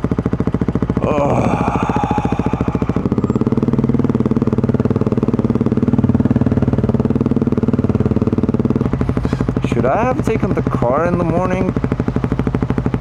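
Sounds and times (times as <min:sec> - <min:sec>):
single-cylinder engine idling: 0:00.0 - 0:13.0.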